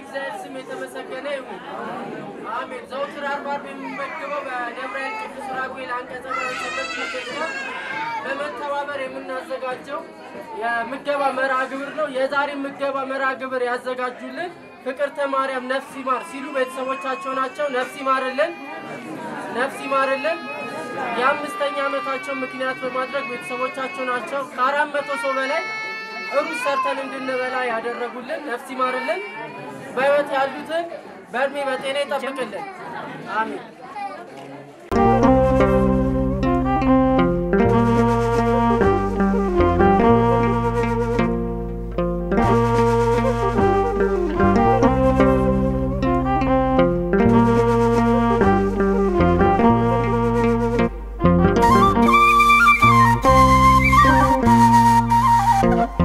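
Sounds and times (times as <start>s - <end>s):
person talking to a group: 0.0s - 34.7s
chatter: 0.0s - 41.2s.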